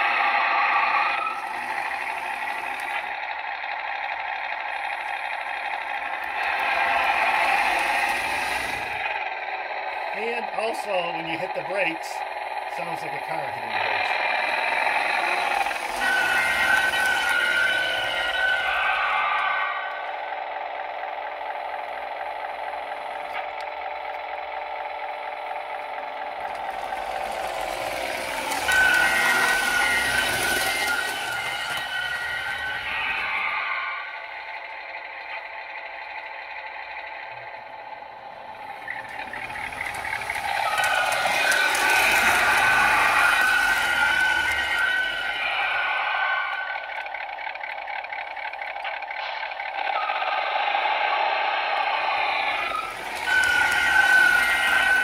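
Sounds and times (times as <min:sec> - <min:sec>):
car engine sound effect: 0:00.0 - 0:55.0
model train running: 0:00.0 - 0:55.0.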